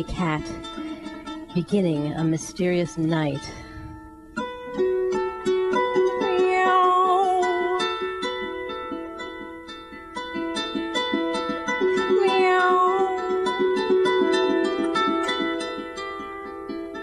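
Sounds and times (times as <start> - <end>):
harp plucked notes: 0.0 - 17.0
wordless wavering singing: 5.9 - 9.2, 11.9 - 16.2.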